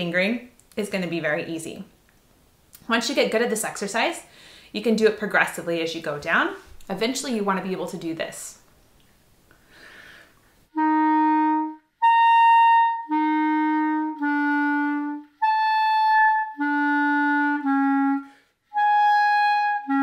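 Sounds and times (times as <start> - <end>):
clarinet tongued notes: 10.7 - 20.0.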